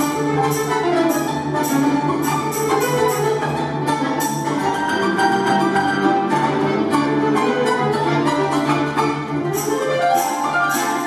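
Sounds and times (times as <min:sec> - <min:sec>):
grand piano: 0:00.0 - 0:11.0
tremolo-picked folk strings: 0:00.0 - 0:11.0
button accordion: 0:00.1 - 0:11.0.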